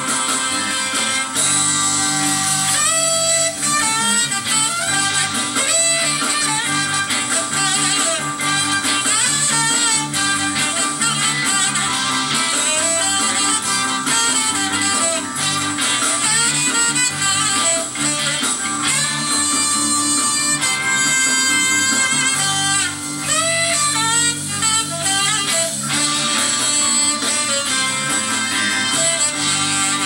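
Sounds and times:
bass line: 0:00.0 - 0:30.0
drums: 0:00.0 - 0:30.0
electric guitar: 0:00.0 - 0:30.0
saxophone: 0:00.0 - 0:30.0
trumpet: 0:00.0 - 0:30.0.

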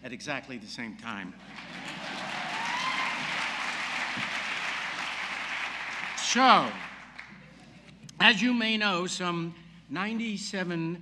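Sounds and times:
audience applauding: 0:01.4 - 0:07.4.

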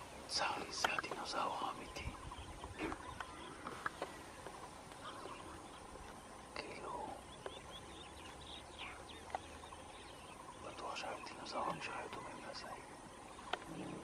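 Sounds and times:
bird calls and chirps: 0:00.0 - 0:14.0
faint outdoor background: 0:00.0 - 0:14.0.

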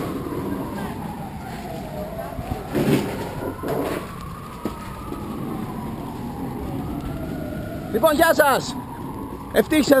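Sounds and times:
traffic noise: 0:00.0 - 0:10.0.

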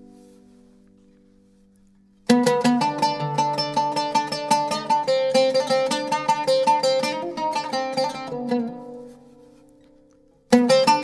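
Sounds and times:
oud plucked notes: 0:02.2 - 0:11.0.

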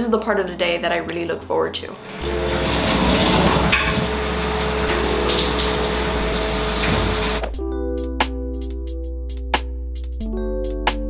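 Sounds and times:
shower water spraying: 0:02.0 - 0:07.6
soft background music: 0:02.2 - 0:11.0.

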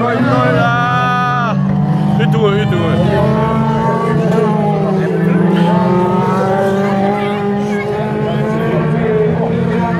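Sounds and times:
race car engines revving: 0:00.0 - 0:09.9.

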